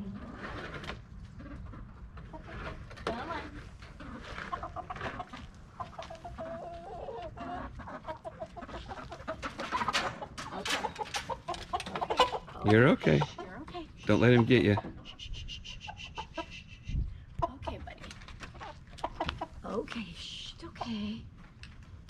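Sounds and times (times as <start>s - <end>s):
chickens clucking: 0.0s - 19.9s.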